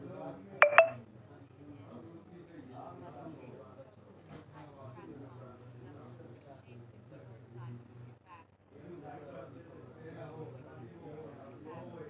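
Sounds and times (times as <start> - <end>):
phone touch-feedback ticks: 0.6 - 1.0.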